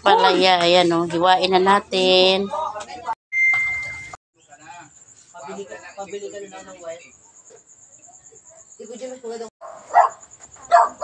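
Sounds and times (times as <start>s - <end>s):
high beep with hiss: 3.4s - 4.2s.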